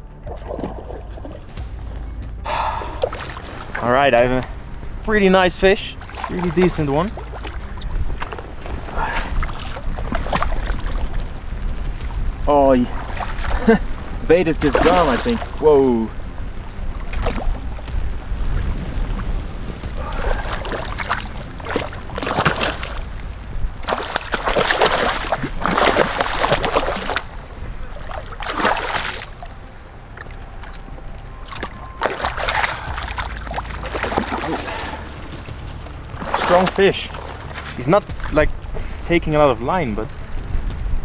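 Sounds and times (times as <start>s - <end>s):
low rumble: 0.0s - 41.0s
fish splashing in water: 2.8s - 3.8s, 5.8s - 11.4s, 16.9s - 17.7s, 20.0s - 29.6s, 31.4s - 38.4s.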